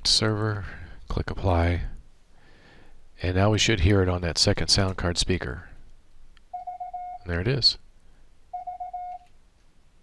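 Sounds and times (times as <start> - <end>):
morse code tone from speaker: 6.5 - 7.4, 8.5 - 9.3.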